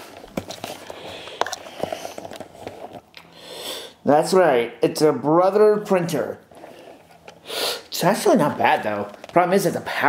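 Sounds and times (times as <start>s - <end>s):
breath drawn in: 6.6s - 7.9s.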